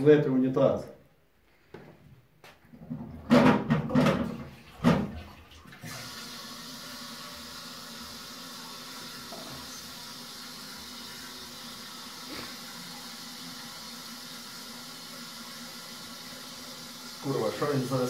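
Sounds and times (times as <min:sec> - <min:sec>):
cistern water hissing: 0:05.4 - 0:18.0.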